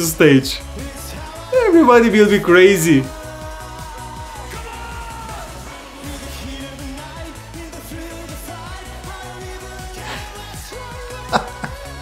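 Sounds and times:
synths and dance beat: 0.0 - 6.6
man singing: 0.0 - 12.0.

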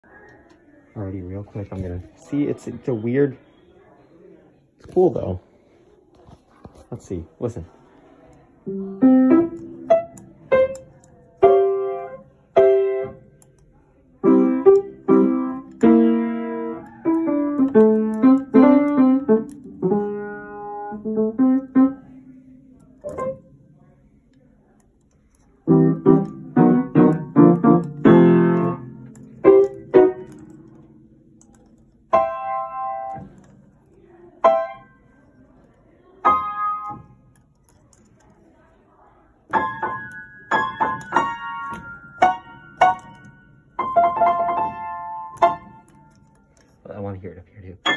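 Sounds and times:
upright piano notes and chords: 8.6 - 13.4, 14.2 - 23.7, 25.6 - 33.5, 34.4 - 34.9, 39.5 - 46.2.

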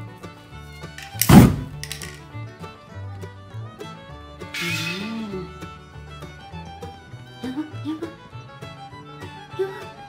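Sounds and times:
fiddle music: 0.0 - 10.0.

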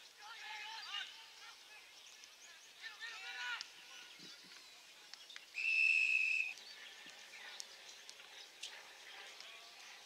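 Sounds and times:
whistle blast: 5.6 - 6.5.

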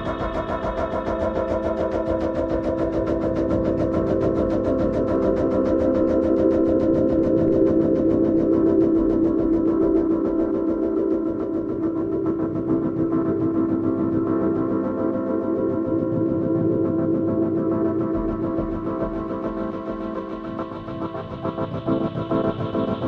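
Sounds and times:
droning synthesizer chords: 0.0 - 23.0.

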